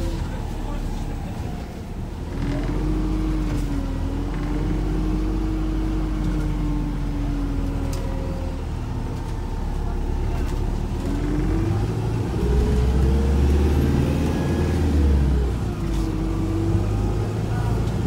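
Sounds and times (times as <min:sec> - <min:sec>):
bus drivetrain whine: 0:00.0 - 0:18.0
deep bus engine rumble: 0:00.0 - 0:18.0.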